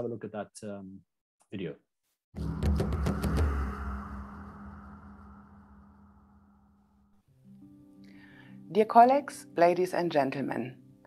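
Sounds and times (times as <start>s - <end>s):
held low note: 2.4s - 7.2s
low rumble: 2.4s - 7.2s.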